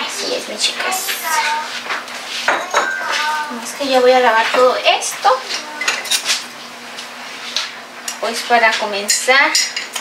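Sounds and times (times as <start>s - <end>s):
ceramic mugs clinking: 2.5s - 3.2s.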